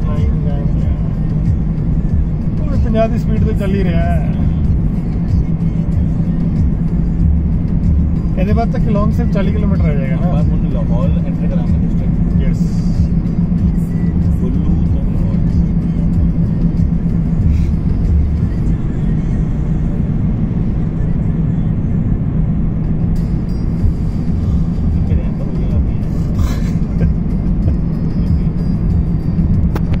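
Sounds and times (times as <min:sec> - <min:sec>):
car road and engine rumble: 0:00.0 - 0:30.0.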